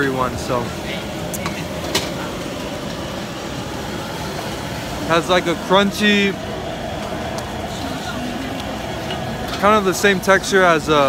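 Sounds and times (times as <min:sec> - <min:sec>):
busy street market din: 0:00.0 - 0:11.0.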